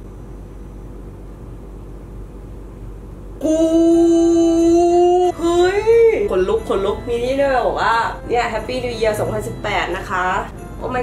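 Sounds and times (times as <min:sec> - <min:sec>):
low hum and hiss: 0:00.0 - 0:11.0.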